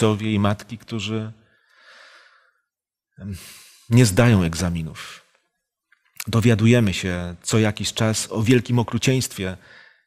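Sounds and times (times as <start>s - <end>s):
man speaking: 0.0s - 1.4s, 3.2s - 5.3s, 6.2s - 9.6s
man breathing in softly: 1.4s - 2.7s, 9.6s - 10.0s.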